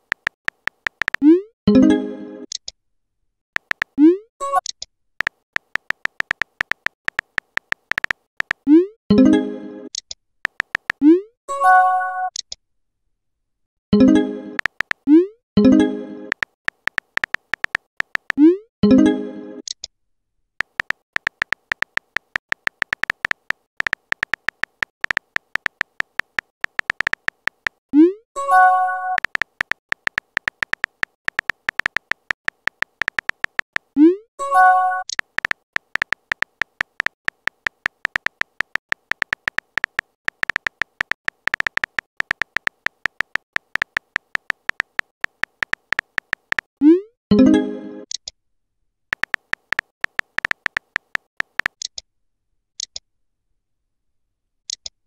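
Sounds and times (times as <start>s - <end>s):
phone keyboard typing clicks: 0.0s - 1.3s, 3.6s - 8.7s, 10.0s - 11.1s, 14.6s - 15.1s, 16.3s - 18.4s, 20.6s - 27.8s, 29.0s - 34.0s, 35.0s - 46.7s, 49.1s - 52.0s.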